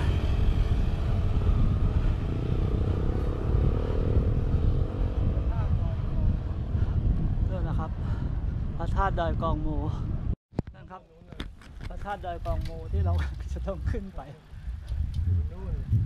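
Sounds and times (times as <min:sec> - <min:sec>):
motorcycle engine passing: 0:00.0 - 0:06.8
wind noise on microphone: 0:00.0 - 0:16.0.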